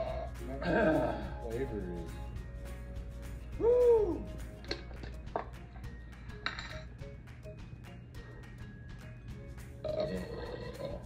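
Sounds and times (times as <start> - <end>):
faint background music: 0.0 - 11.0
drink cans clinking on table: 6.4 - 6.9.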